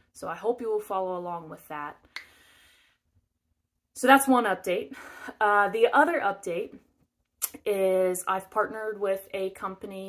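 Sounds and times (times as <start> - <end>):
soft breath in: 2.2 - 3.0.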